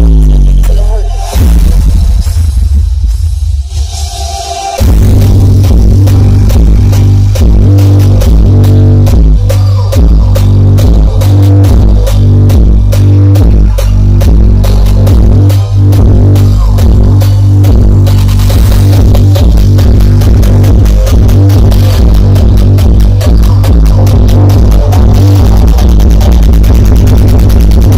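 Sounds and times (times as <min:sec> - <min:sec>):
loud electronic dance music: 0:00.0 - 0:27.9.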